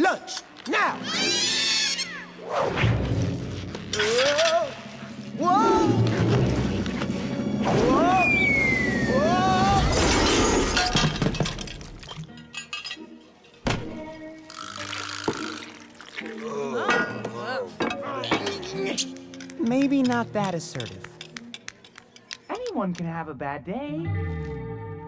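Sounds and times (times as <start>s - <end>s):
music: 0.0s - 25.0s
long falling whistle: 8.2s - 9.4s.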